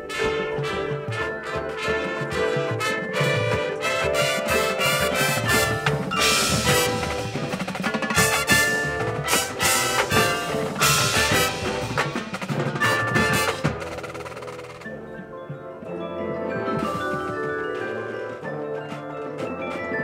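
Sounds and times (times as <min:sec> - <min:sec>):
drum and bugle corps playing: 0:00.0 - 0:20.0.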